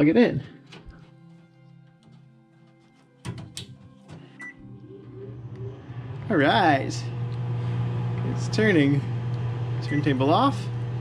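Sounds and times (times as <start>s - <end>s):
motor humming: 4.4s - 11.0s.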